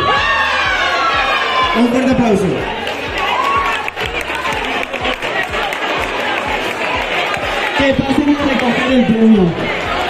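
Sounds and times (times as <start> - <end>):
crowd clapping and cheering: 0.0 - 10.0.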